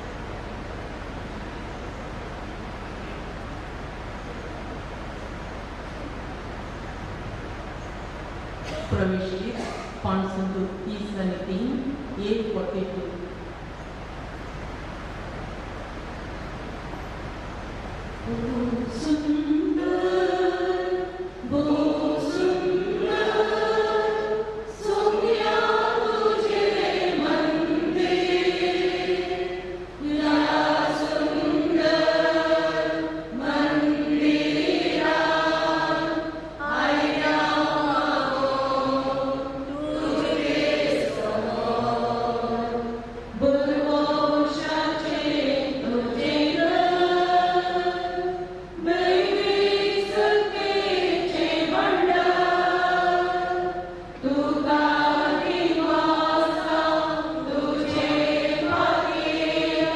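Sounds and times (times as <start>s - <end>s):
choir singing a hymn: 18.2s - 59.9s.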